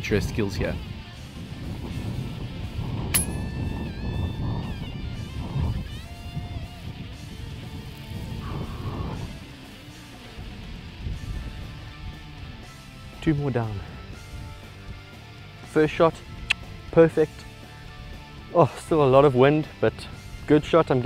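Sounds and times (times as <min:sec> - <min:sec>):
wind rumble on microphone: 0:00.0 - 0:13.1.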